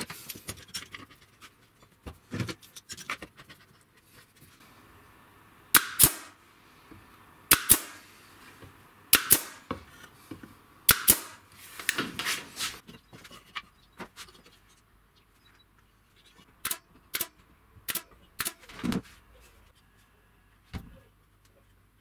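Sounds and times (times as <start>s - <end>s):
rustling and handling noise: 0.0s - 4.7s, 11.4s - 16.6s
nail gun firing into wood: 5.7s - 6.4s, 7.5s - 8.0s, 9.1s - 9.7s, 10.9s - 11.4s, 16.6s - 17.3s, 17.9s - 18.7s.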